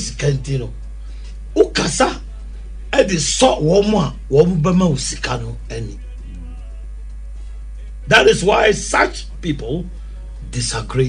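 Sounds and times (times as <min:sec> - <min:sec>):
man speaking: 0:00.0 - 0:00.8, 0:01.6 - 0:06.8, 0:08.1 - 0:11.0
steady low hum: 0:00.0 - 0:11.0.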